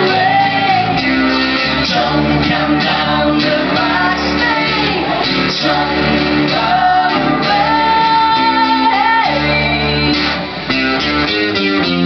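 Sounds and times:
people singing loudly: 0.0s - 10.6s
acoustic guitar: 0.0s - 12.0s
electric bass: 0.0s - 12.0s.

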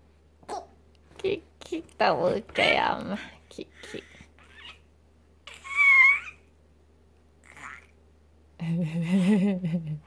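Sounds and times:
baby squealing with delight: 5.5s - 6.4s.

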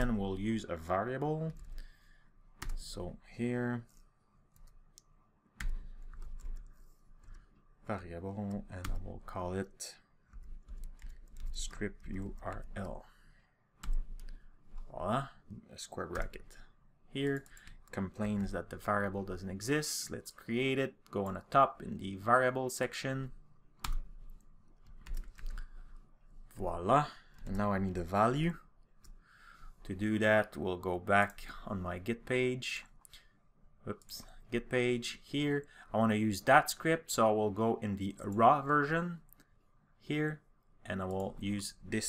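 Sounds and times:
computer keyboard typing: 1.5s - 1.8s, 2.6s - 2.9s, 5.6s - 7.5s, 8.4s - 9.2s, 10.3s - 13.0s, 13.8s - 14.9s, 23.8s - 25.9s.

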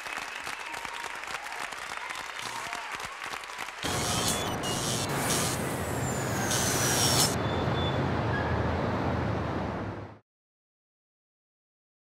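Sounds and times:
traffic rumble: 3.8s - 10.2s
short hiss: 3.9s - 7.4s.

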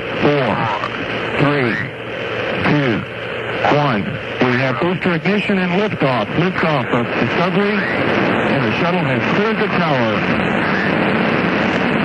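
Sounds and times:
rocket launch roar over radio: 0.0s - 12.0s.

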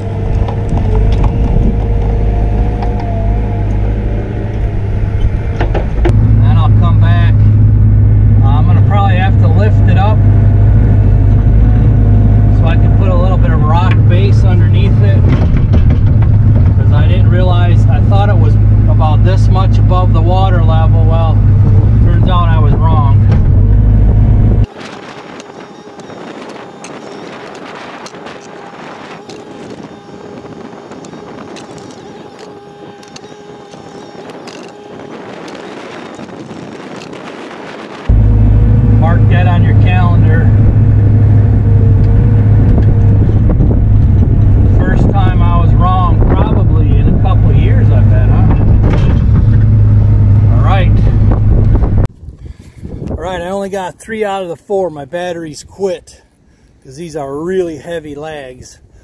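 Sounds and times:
excavator diesel engine drone: 0.0s - 52.1s.

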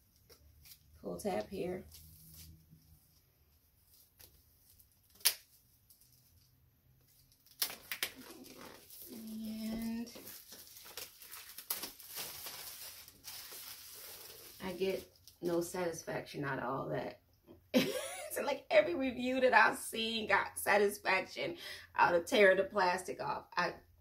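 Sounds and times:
plastic shrink-wrap crinkling and tearing: 0.1s - 2.6s, 3.8s - 15.6s.

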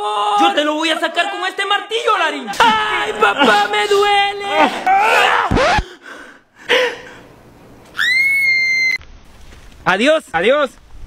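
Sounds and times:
man screaming in pain: 2.6s - 5.8s.

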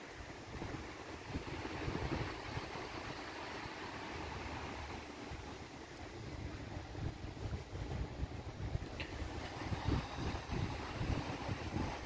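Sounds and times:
distant traffic hiss: 0.0s - 12.0s
wind buffeting microphone: 0.0s - 12.0s.

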